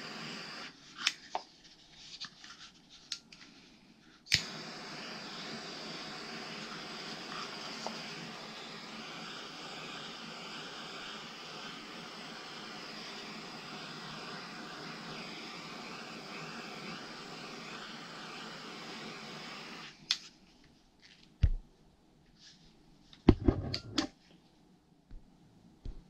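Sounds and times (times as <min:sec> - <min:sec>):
gas torch hissing: 0:00.0 - 0:01.2, 0:04.2 - 0:20.1.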